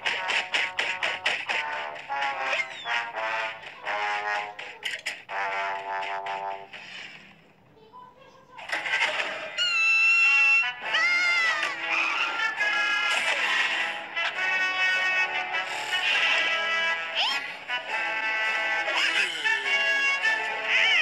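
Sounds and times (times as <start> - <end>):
cartoon music: 0.0 - 6.7, 8.7 - 21.0.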